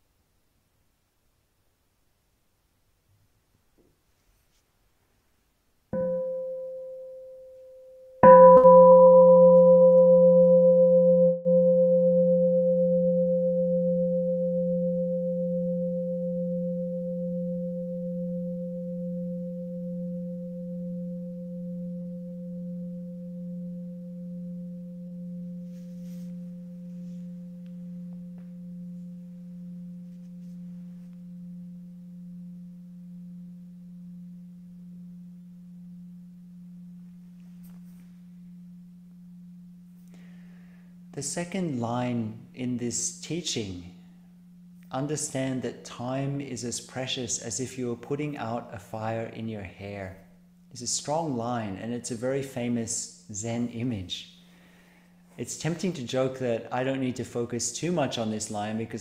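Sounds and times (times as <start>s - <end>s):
meditation bowl bell ringing: 6.0s - 46.4s.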